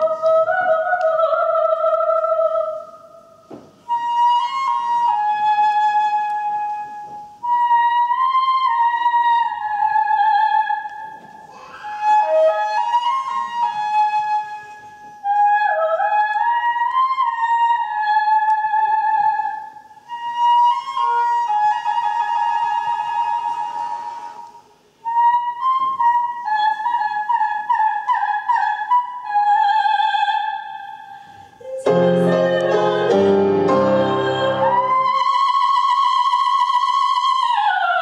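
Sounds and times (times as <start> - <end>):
solo flute trilling: 3.8 - 18.2, 18.8 - 37.7.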